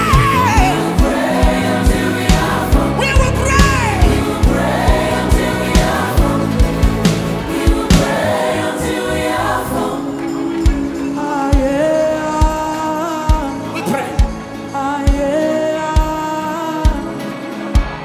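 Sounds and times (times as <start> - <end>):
steady drum beat: 0.0 - 8.7
band playing: 0.0 - 18.0
choir singing gospel: 0.0 - 18.0.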